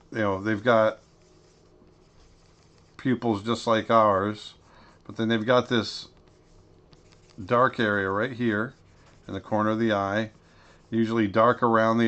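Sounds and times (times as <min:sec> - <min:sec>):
stylus scratching on tablet: 0:00.0 - 0:12.0.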